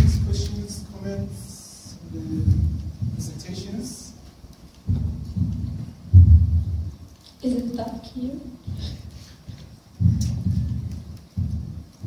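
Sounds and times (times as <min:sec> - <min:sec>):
microphone handling noise: 0:00.0 - 0:00.7, 0:02.0 - 0:03.5, 0:04.8 - 0:07.0, 0:08.6 - 0:12.0.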